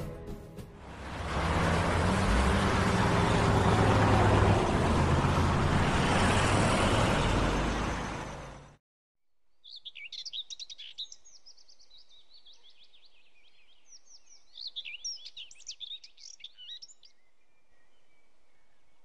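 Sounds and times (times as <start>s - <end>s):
small birds chirping: 9.6s - 19.0s.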